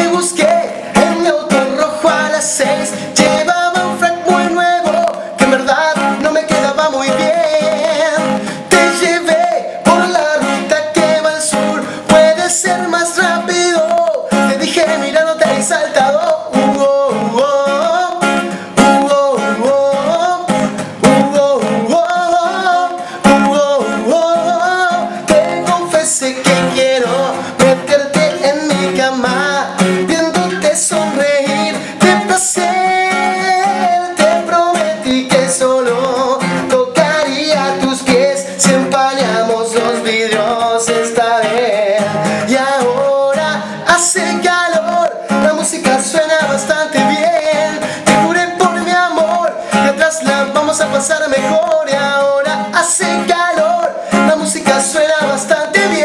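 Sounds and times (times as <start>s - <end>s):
man singing: 0.0s - 56.0s
strummed acoustic guitar: 0.0s - 56.0s.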